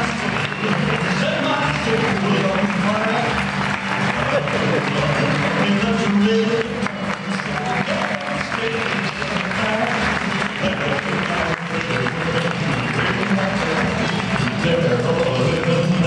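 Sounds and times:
audience applause: 0.0s - 16.0s
crowd voices: 0.0s - 16.0s
music playing: 0.0s - 16.0s.

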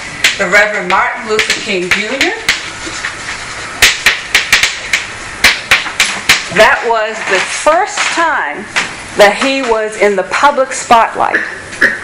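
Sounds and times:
sharp irregular taps: 0.2s - 7.4s.

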